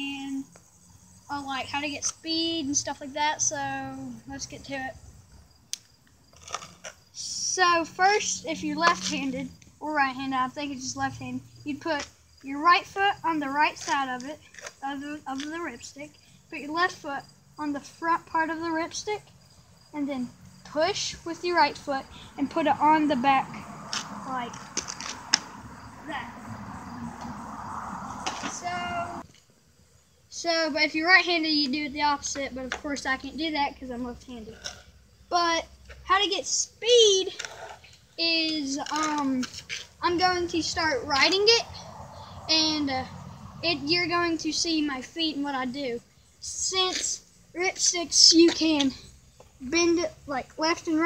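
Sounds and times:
board wheels rolling on concrete: 1.3s - 51.0s.

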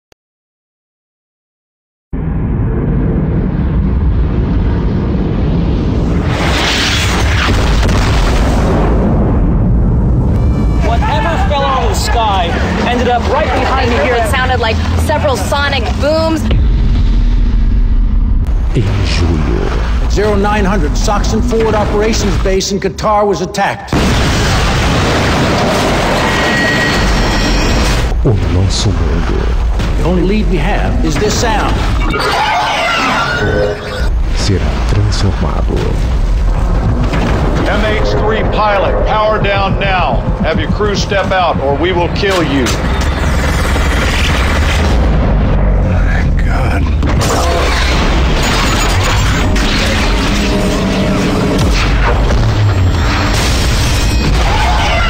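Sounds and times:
deep loud rumble: 2.1s - 22.6s, 34.1s - 48.5s
explosion blast: 2.2s - 10.8s, 16.4s - 22.6s, 23.9s - 32.2s, 34.0s - 55.0s.

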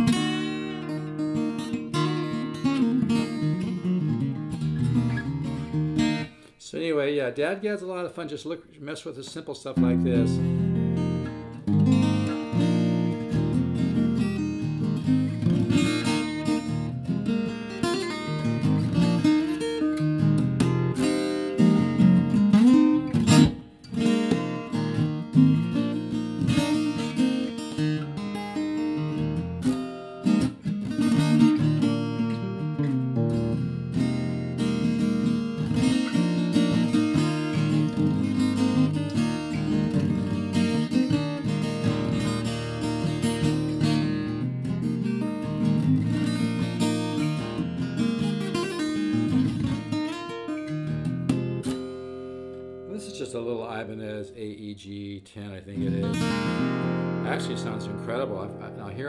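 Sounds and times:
acoustic guitar picked and strummed: 0.0s - 59.0s.

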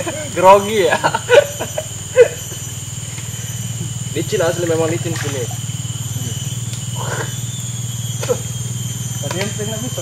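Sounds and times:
low pulsing drone: 0.0s - 10.0s
steady high-pitched tones: 0.0s - 10.0s.

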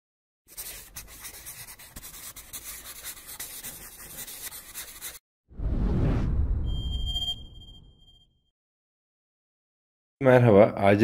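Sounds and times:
scratchy rubbing sound: 0.5s - 5.2s.

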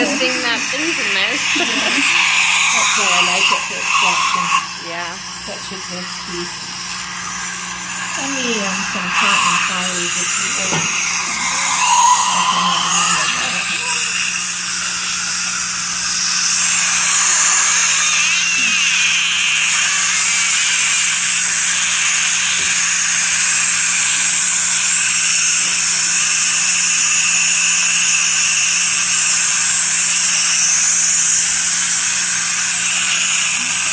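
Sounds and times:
dental suction hissing: 0.0s - 33.9s.

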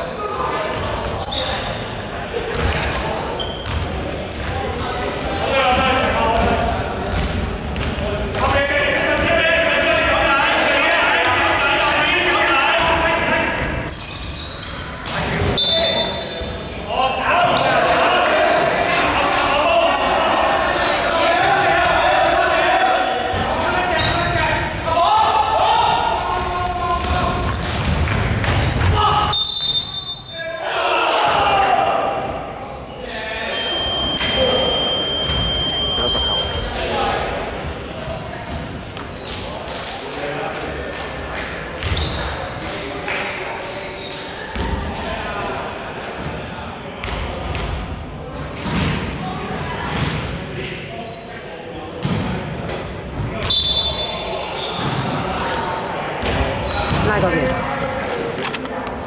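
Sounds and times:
people talking and calling out: 0.0s - 59.0s
basketball bouncing on wooden court: 2.5s - 2.9s, 3.6s - 4.6s, 6.4s - 8.5s, 41.8s - 42.2s, 49.9s - 50.2s, 52.0s - 52.3s, 56.2s - 57.2s.

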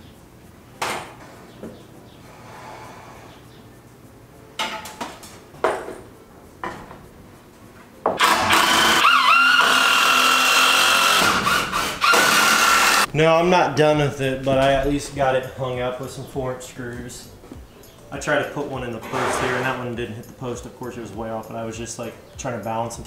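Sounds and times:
power drill driving screw: 8.2s - 13.1s.

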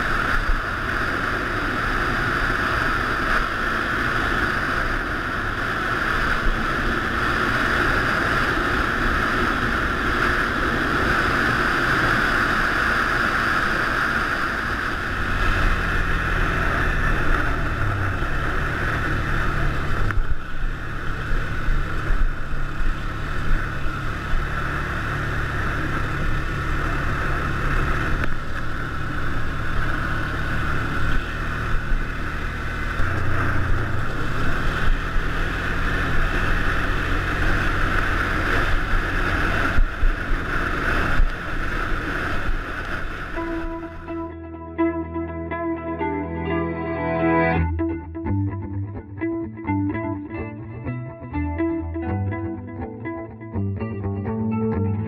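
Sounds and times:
quad bike engine running: 0.0s - 44.3s
wind noise on microphone: 0.0s - 44.5s.

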